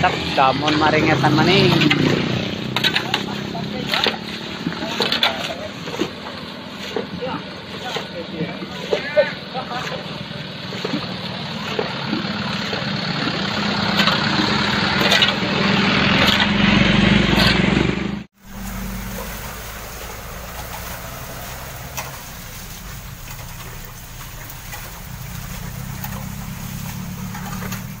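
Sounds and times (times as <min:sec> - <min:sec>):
indistinct voices: 0:00.0 - 0:17.6
low engine drone: 0:00.0 - 0:28.0
traffic on wet road: 0:00.0 - 0:28.0.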